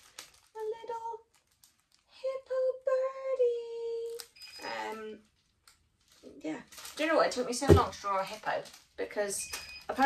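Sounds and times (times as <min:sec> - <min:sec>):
speech: 0:00.6 - 0:01.3, 0:02.1 - 0:05.2, 0:06.2 - 0:10.0.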